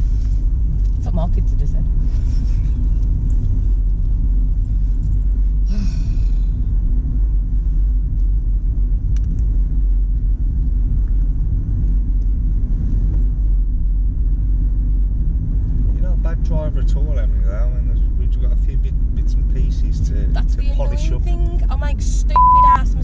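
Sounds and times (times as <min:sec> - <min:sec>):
car engine and tyres rumbling: 0:00.0 - 0:23.0.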